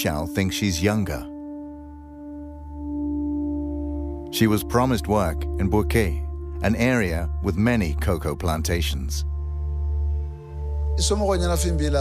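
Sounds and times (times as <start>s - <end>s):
background music drone: 0.0s - 12.0s.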